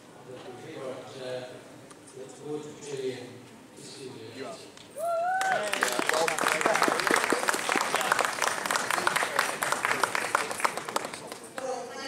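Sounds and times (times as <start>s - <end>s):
crowd applauding: 5.2s - 11.8s.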